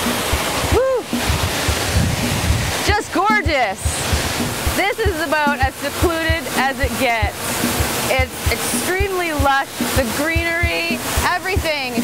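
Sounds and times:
waterfall rushing water: 0.0 - 12.0
wind buffeting microphone: 0.0 - 12.0.

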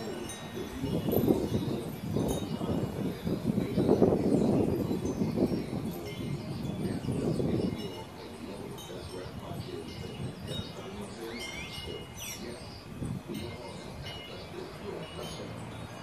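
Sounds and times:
rushing wind noise: 0.0 - 16.0
wind chimes tinkling: 0.0 - 16.0.

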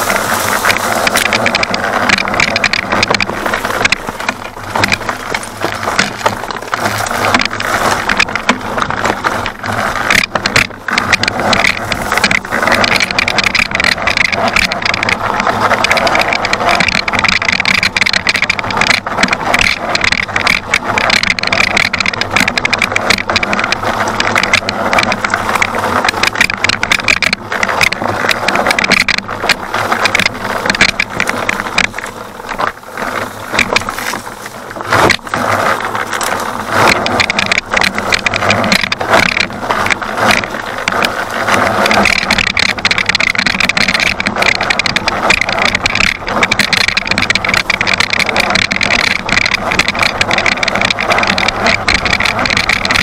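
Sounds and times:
electric dirt bike riding on rocks: 0.0 - 53.0
rapid knocks and rattles: 0.0 - 53.0.

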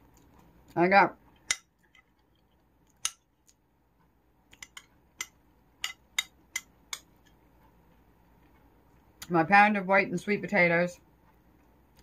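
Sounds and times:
metal spoon scraping a bowl: 4.6 - 7.4.

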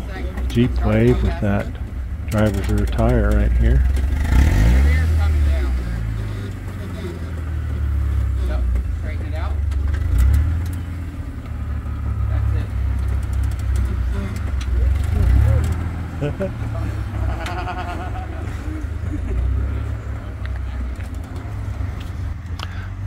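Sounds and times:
jeep engine revving at low revs: 0.0 - 23.0.

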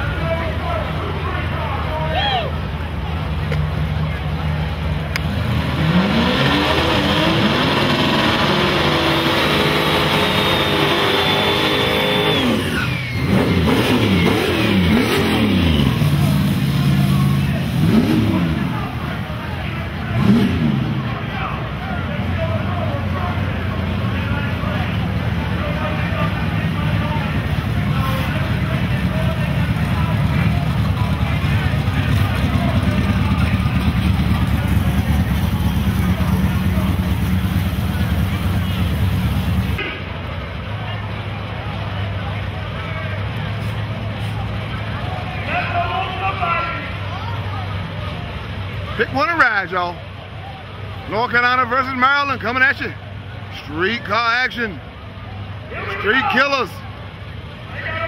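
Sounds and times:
crowd chatter: 0.0 - 58.0
drag car engines revving: 0.0 - 58.0.

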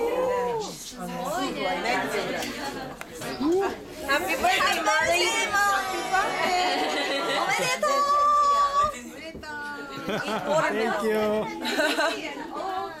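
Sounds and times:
people talking at once: 0.0 - 13.0.

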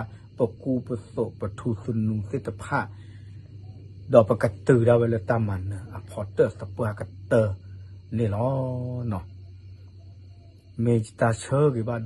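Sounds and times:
man speaking: 0.0 - 3.0, 4.1 - 9.3, 10.8 - 12.0.

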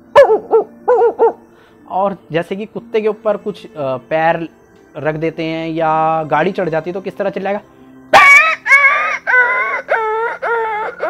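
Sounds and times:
man imitating dog yelping: 0.2 - 1.4, 8.2 - 9.8.

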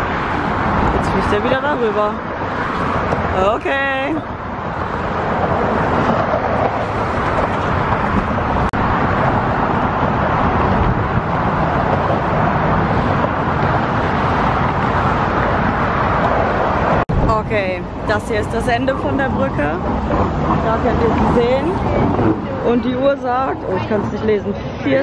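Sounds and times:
road traffic passing: 0.0 - 25.0.

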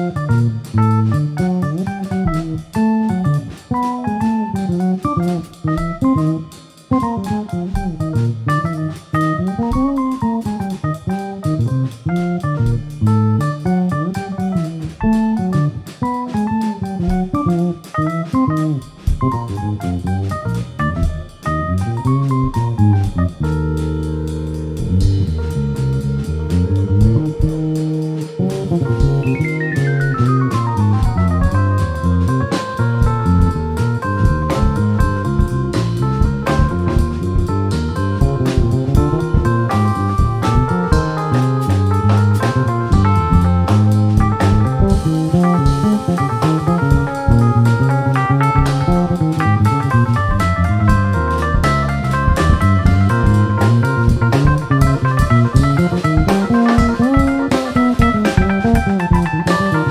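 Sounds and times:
drum kit: 0.0 - 59.9
electric bass guitar: 0.0 - 59.9
electric keyboard: 0.0 - 59.9.

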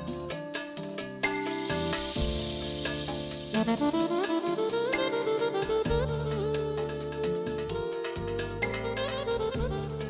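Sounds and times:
fast ornamented keyboard melody: 1.1 - 10.0
keyboard held chords with hiss: 1.1 - 10.0.

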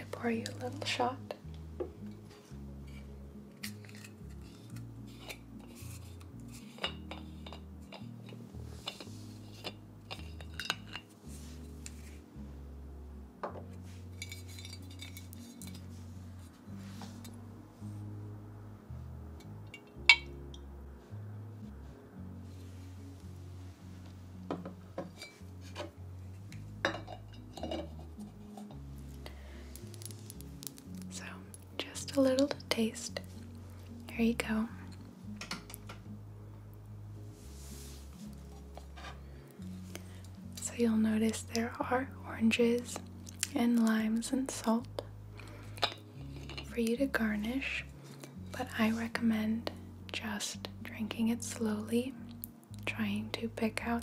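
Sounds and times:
muffled background music: 0.0 - 54.0
glass bottle clinking: 19.8 - 20.3, 26.8 - 28.0.

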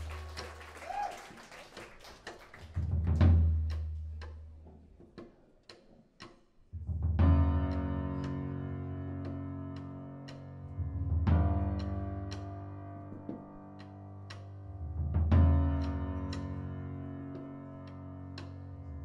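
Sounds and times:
sharp ticks keeping time: 2.1 - 19.0.

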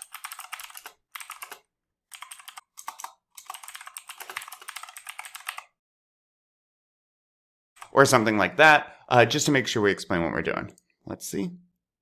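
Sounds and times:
typing on computer keyboard: 0.0 - 5.7.

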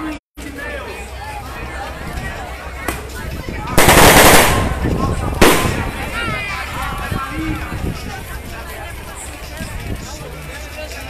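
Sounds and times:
crowd chatter: 0.0 - 11.0
firecrackers crackling: 3.8 - 6.6.

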